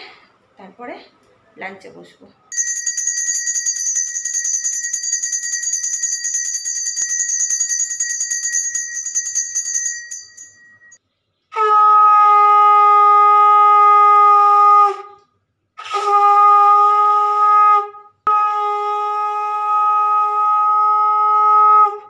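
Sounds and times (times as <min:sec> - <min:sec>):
hand bell rung rapidly: 0:02.5 - 0:11.0
conch shell blown: 0:11.6 - 0:15.1, 0:15.8 - 0:22.0.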